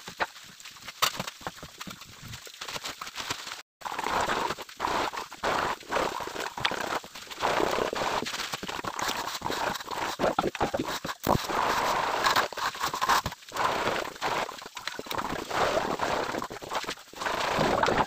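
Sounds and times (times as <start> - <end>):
tools scraping wet plaster: 3.8 - 18.0.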